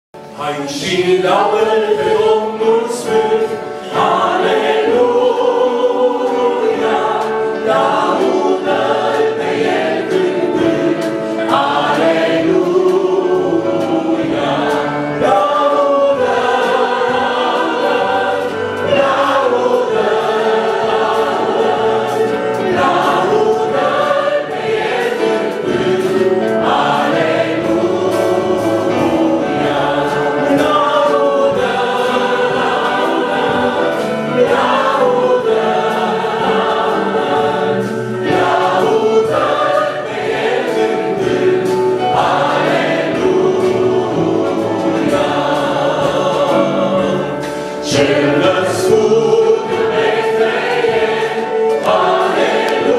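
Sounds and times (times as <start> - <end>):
electronic keyboard accompaniment: 0.2 - 52.9
mixed vocal quartet singing hymn: 0.2 - 52.9.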